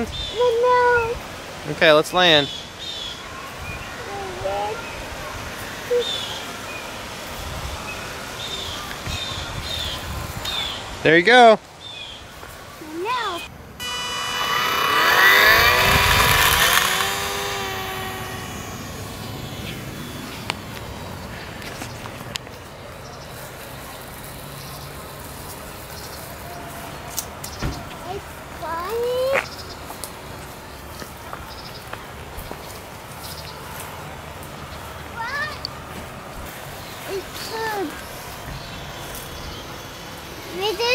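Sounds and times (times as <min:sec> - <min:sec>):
child's voice: 0:00.3 - 0:01.2, 0:04.0 - 0:05.0, 0:12.8 - 0:13.5, 0:28.0 - 0:29.5, 0:35.2 - 0:35.7, 0:37.1 - 0:38.0, 0:40.5 - 0:40.9
voices: 0:12.2 - 0:40.9
model plane motor whining: 0:13.8 - 0:20.6.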